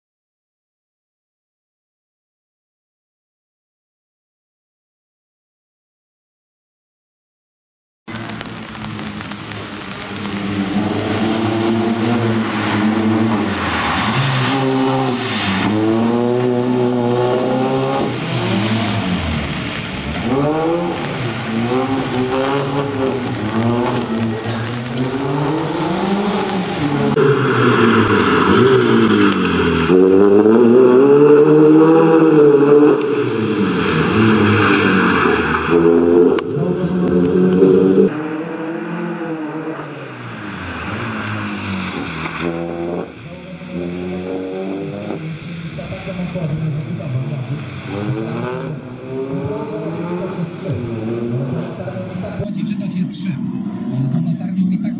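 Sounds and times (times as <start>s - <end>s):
rally car engine revving hard: 10.3s - 46.6s, 47.2s - 54.9s.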